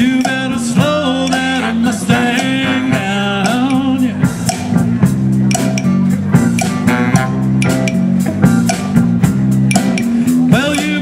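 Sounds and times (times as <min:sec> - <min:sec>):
big band playing soul tune: 0:00.0 - 0:11.0
steady drum beat: 0:00.0 - 0:11.0.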